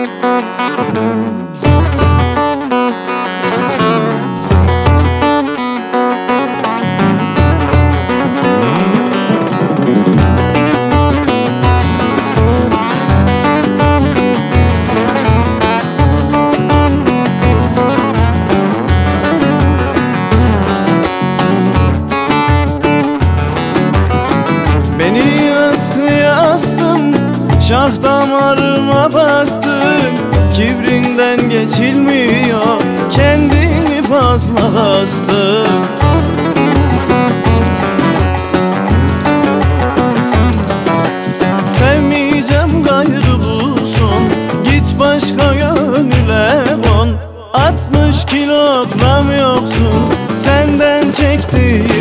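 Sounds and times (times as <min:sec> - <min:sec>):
plucked acoustic guitar: 0:00.0 - 0:52.0.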